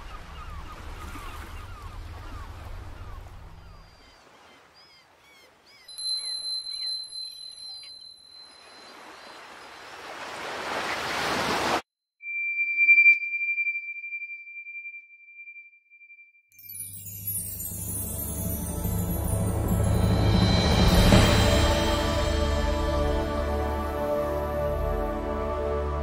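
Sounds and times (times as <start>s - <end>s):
bird chirps: 3.0s - 10.0s.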